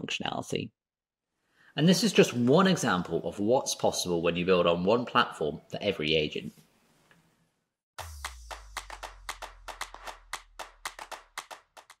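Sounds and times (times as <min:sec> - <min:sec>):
deep bass tone: 0:08.0 - 0:10.6.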